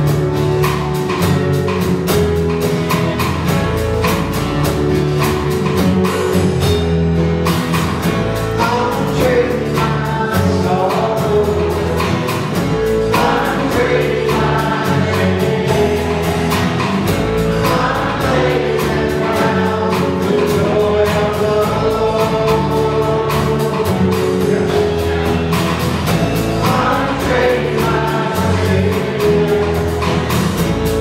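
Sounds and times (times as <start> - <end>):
drum kit beat: 0.0 - 31.0
strummed acoustic guitars: 0.0 - 31.0
people singing: 8.6 - 31.0.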